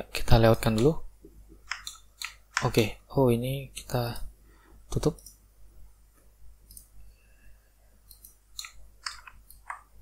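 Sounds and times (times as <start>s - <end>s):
computer mouse clicks: 1.6s - 2.8s, 6.6s - 6.9s, 8.0s - 9.9s.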